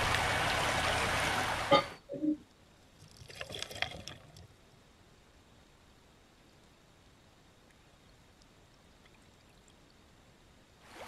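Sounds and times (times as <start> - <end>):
creek water splashing over stones: 0.0 - 1.8, 3.0 - 4.5
faint scattered clicks: 7.6 - 10.0.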